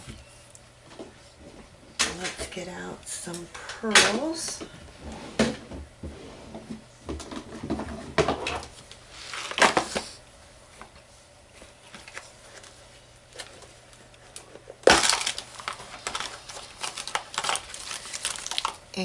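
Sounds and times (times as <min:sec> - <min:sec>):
craft supplies rustling: 0:11.7 - 0:18.8.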